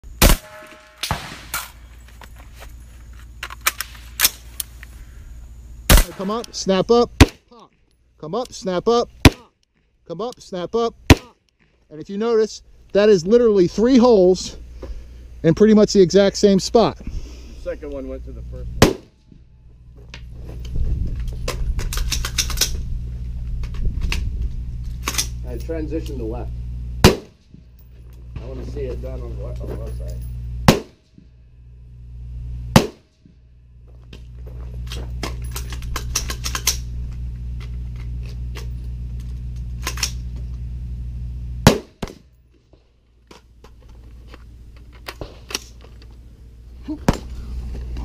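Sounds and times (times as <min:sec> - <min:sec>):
steady low hum: 0:00.0 - 0:48.0
rifle shots: 0:00.2 - 0:01.8, 0:05.9 - 0:07.4, 0:18.8 - 0:19.2, 0:27.0 - 0:27.5, 0:30.6 - 0:31.1, 0:32.7 - 0:33.2, 0:41.6 - 0:42.3.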